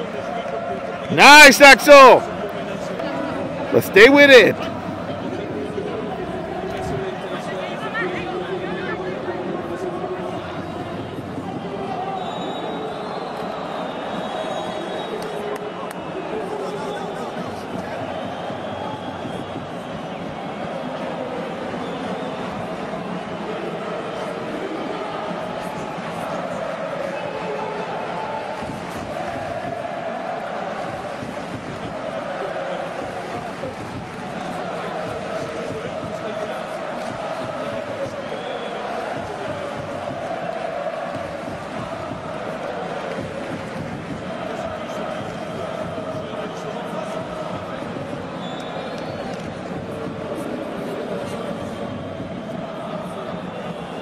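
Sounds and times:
babble of many voices: 0.0s - 13.7s, 14.8s - 54.0s.

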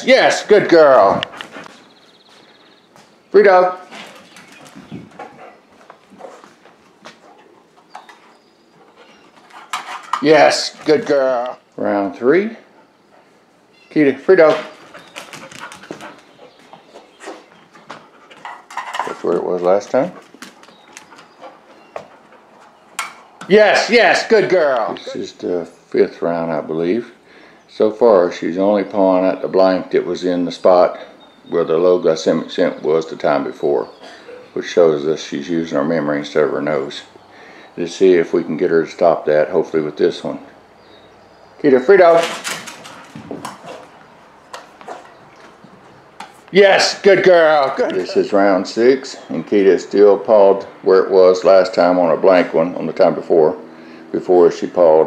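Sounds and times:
dog sniffing: 3.8s - 9.8s, 14.7s - 18.6s, 42.8s - 45.6s
metal cans clicking and knocking: 18.4s - 19.3s.

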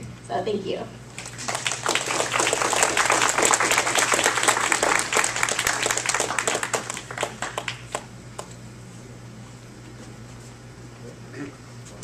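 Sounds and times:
audience applause: 1.1s - 8.1s.

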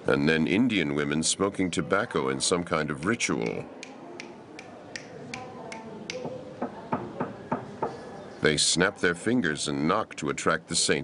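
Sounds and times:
fingers snapping: 3.4s - 6.2s.

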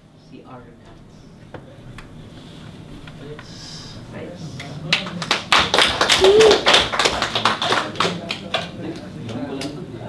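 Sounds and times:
audience applauding: 4.9s - 8.8s.

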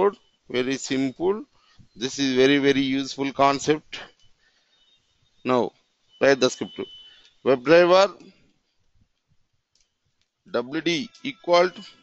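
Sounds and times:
person speaking: 0.0s - 4.2s, 5.5s - 8.3s, 10.5s - 12.0s.

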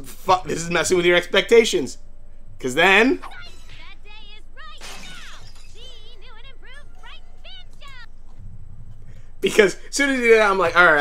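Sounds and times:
high cartoon character voice: 3.2s - 8.1s.

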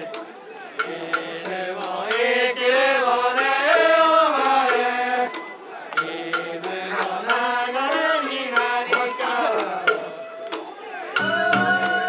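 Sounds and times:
festival music melody: 0.0s - 12.0s.

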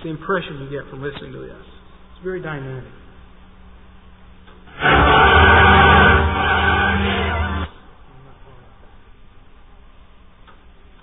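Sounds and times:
choir singing sustained chord: 4.7s - 7.8s.

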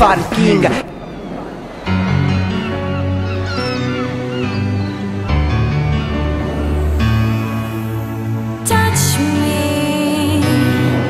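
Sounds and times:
gulls crying: 0.0s - 11.0s
held synthesizer chords: 0.7s - 11.0s.

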